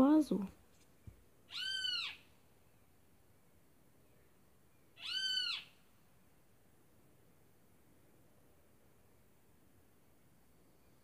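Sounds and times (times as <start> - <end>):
animal calls: 1.5 - 2.3, 5.0 - 5.8.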